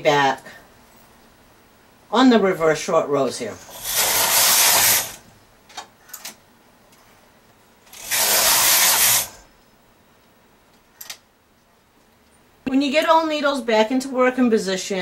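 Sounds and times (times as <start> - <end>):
knitting machine carriage sliding: 3.6 - 5.2, 7.9 - 9.5.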